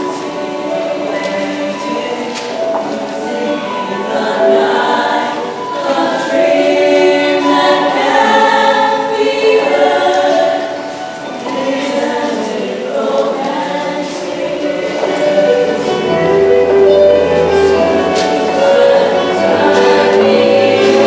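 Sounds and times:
choir singing in harmony: 0.0 - 21.0.

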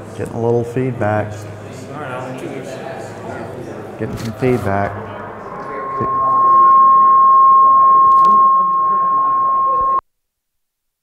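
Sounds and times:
high-pitched feedback howl: 4.6 - 10.0.

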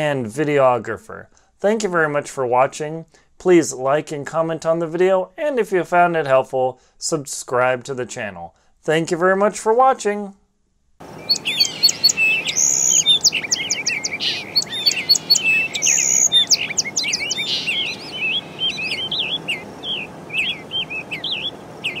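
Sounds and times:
low background hiss: 0.0 - 22.0
birds chirping and calling: 11.0 - 22.0.

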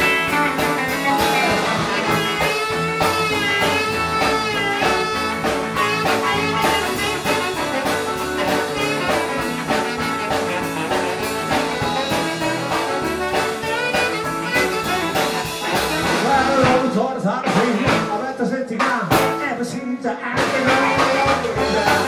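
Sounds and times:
saxophone lead: 0.0 - 17.1, 20.4 - 22.0
drums keeping a steady beat: 0.0 - 22.0
electric guitar: 0.0 - 22.0
upright bass: 0.0 - 22.0.

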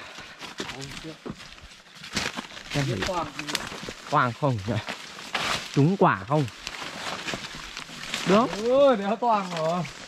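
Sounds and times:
footsteps through leaves and brush: 0.0 - 10.0
man talking: 2.7 - 4.9, 5.8 - 6.5.

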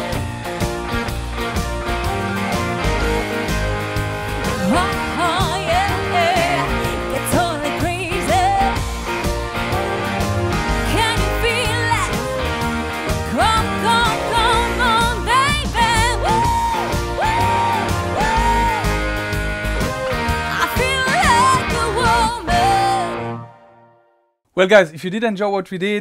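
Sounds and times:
band playing country-pop song: 0.0 - 23.4.

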